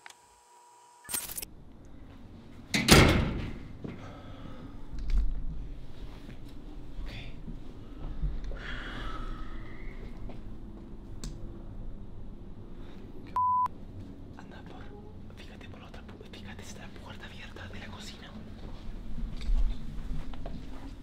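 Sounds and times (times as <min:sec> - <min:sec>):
person whispering: 0:07.0 - 0:07.4, 0:14.4 - 0:18.5
censor beep: 0:13.4 - 0:13.7.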